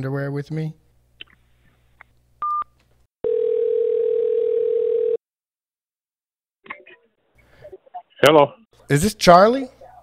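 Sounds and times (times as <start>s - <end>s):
dial tone: 3.2s - 5.2s.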